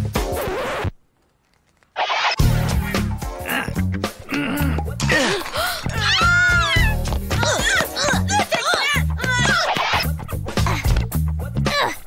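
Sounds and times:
background music with low bass: 2.4 - 7.6, 9.0 - 11.8
young children wailing: 4.4 - 9.8.

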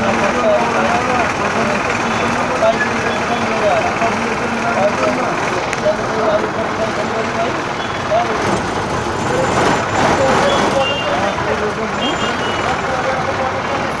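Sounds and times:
minibus engine and road noise: 0.0 - 14.0
voices talking: 0.0 - 14.0.

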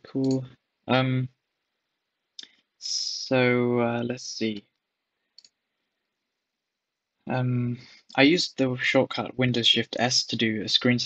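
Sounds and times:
computer mouse click: 5.4 - 5.6.

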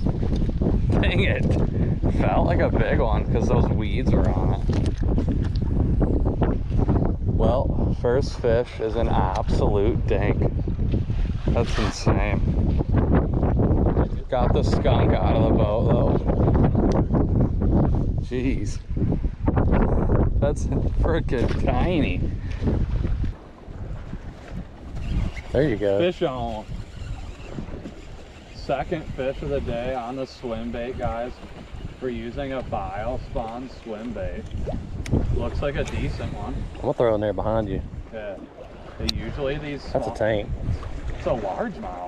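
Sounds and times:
choppy water lapping boat: 0.0 - 42.0
wind buffeting microphone: 0.0 - 42.0.

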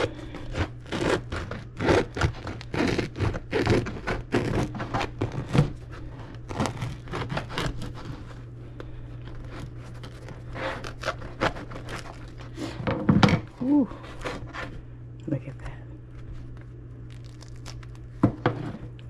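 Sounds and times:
knife sawing through bread: 0.0 - 8.4, 9.4 - 12.8, 13.9 - 14.7.

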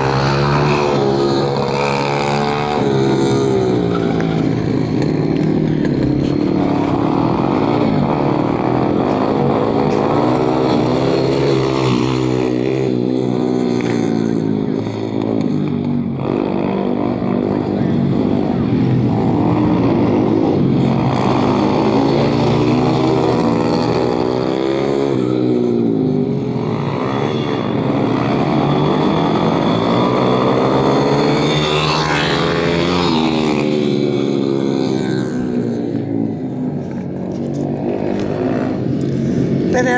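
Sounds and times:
motorcycle engines revving: 0.0 - 39.9.

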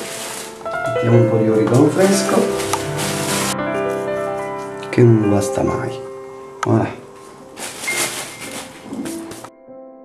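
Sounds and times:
rustling crackling noise: 0.0 - 5.0, 7.0 - 9.5
faint background music: 0.0 - 9.7.

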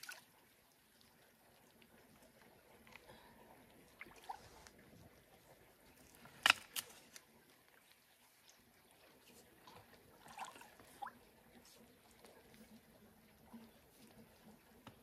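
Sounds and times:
shallow water sloshing and splashing: 0.0 - 14.8.

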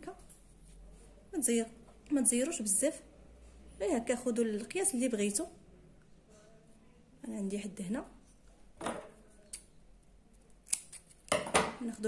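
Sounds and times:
scissors snipping elastic: 10.6 - 11.2.

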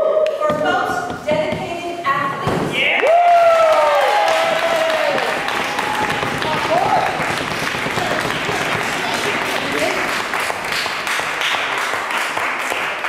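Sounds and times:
audience applauding: 3.0 - 13.0.

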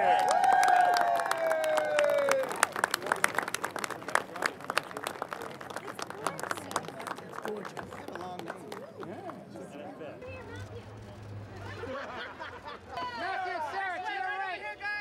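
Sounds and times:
crowd applauding: 0.0 - 9.8.

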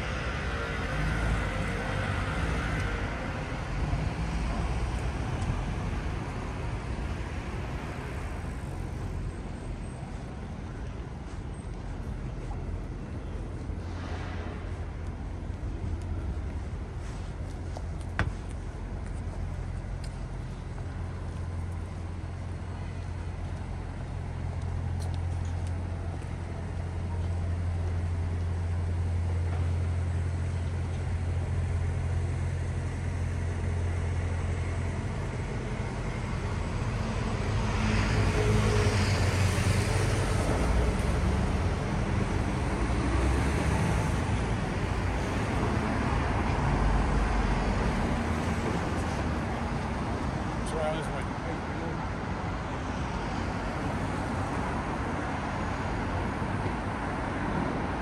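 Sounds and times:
low engine hum: 0.0 - 58.0
vehicles passing: 0.0 - 58.0.

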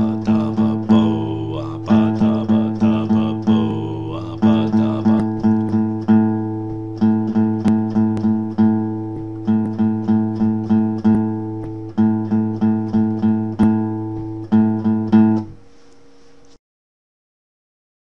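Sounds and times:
guitar strumming one chord: 0.0 - 15.6.

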